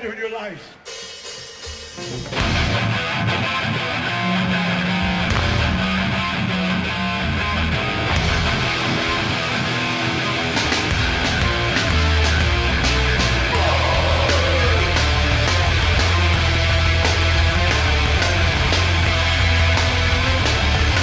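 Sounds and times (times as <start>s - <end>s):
hardcore band playing: 0.8s - 21.0s.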